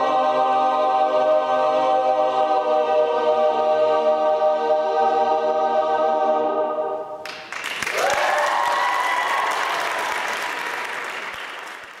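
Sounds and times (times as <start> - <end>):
male a cappella group chord: 0.0 - 7.0
audience applause: 7.2 - 12.0
whooping cheer: 7.9 - 11.0.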